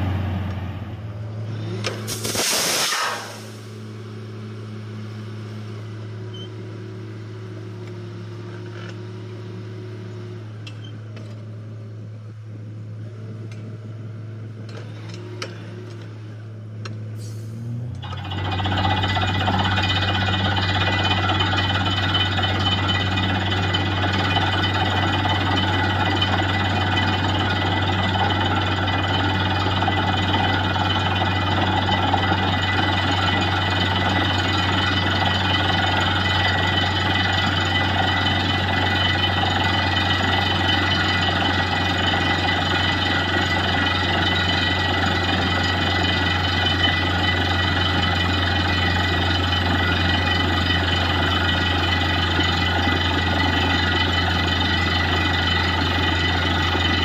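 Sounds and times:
drilling rig running: 1.3s - 3.9s, 17.2s - 57.0s.

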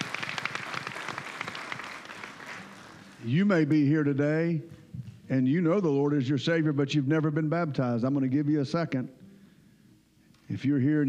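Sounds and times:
congregation applauding: 0.0s - 3.8s.

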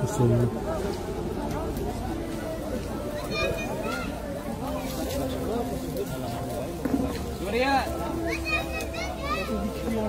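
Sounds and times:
people talking and calling out: 0.0s - 10.0s
children's voices: 3.0s - 5.0s, 8.0s - 10.0s.

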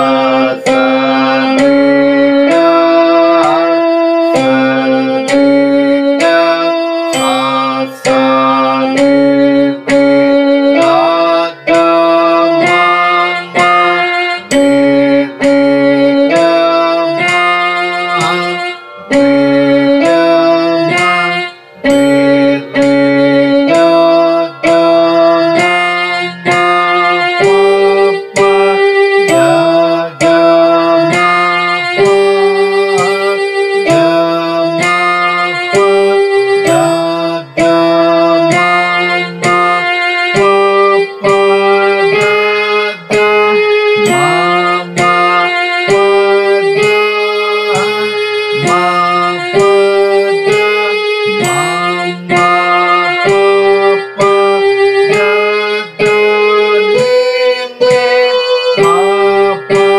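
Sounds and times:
electronic keyboard melody: 0.0s - 59.9s.

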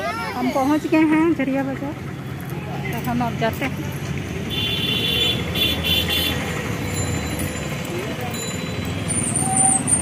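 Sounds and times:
traffic engines rumbling: 0.0s - 10.0s.

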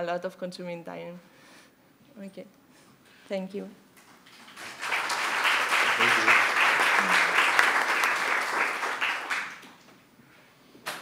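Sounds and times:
audience applauding: 4.2s - 9.8s.

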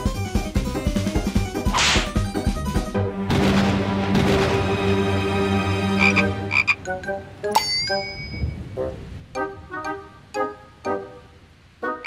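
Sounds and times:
cartoon frog croaking: 6.0s - 6.8s.

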